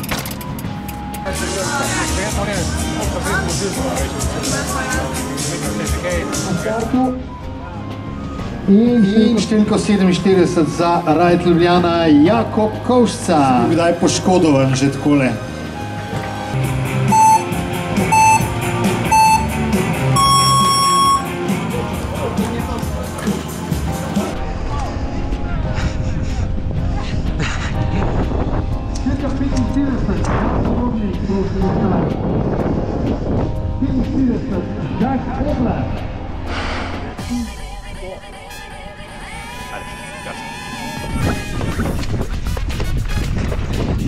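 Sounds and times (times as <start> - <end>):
background music: 0.0 - 44.0
longer higher beep: 17.1 - 18.5, 19.1 - 19.5, 20.2 - 21.3
short timer beeps: 17.1 - 18.5, 19.1 - 19.5, 20.2 - 21.3.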